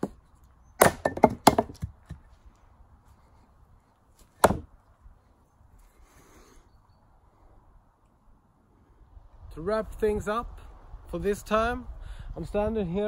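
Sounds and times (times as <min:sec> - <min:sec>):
axe chopping into wood: 0:00.8 - 0:02.2, 0:04.2 - 0:04.7.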